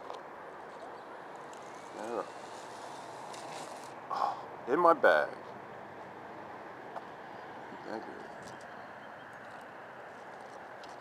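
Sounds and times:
outdoor background noise: 0.0s - 11.0s
small electric motor whine: 1.3s - 4.0s.

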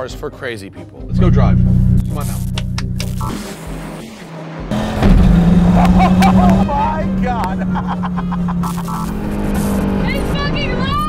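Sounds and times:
car engine accelerating hard: 1.1s - 11.0s.

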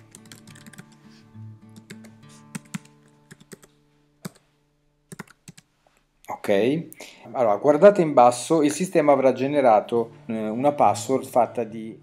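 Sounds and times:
computer keyboard typing: 0.0s - 1.0s, 1.8s - 4.4s, 5.1s - 5.7s.

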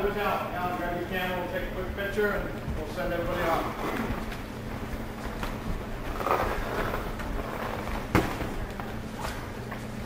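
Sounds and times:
steady low hum: 0.0s - 10.0s
footsteps on wooden floor: 2.6s - 9.9s.

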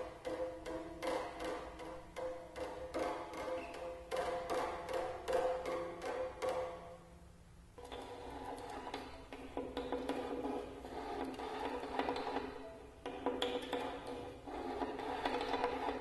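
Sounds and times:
violin scraping noise with clicks: 7.8s - 16.0s.

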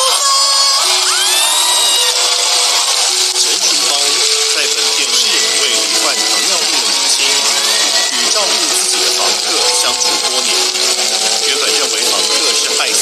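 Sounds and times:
audience applauding and cheering: 0.0s - 13.0s
music playing: 0.0s - 13.0s.

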